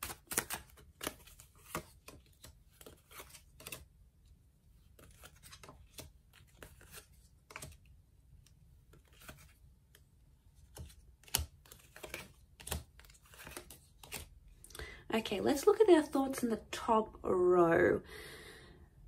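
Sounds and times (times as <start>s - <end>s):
cards clicking and tapping: 0.0s - 3.9s, 4.9s - 14.4s.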